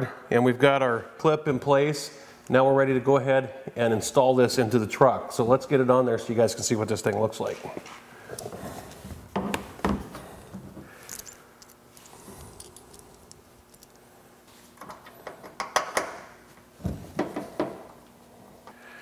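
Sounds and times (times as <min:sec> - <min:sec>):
small screws in hand: 0:11.0 - 0:14.0.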